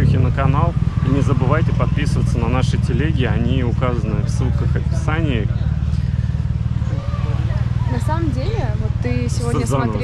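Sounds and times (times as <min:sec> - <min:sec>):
faint voices: 0:00.0 - 0:10.0
steady low rumble: 0:00.0 - 0:10.0.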